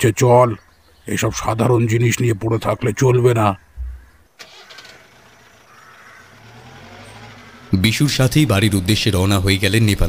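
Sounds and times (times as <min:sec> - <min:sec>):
car engine starting and idling: 0:03.8 - 0:10.0.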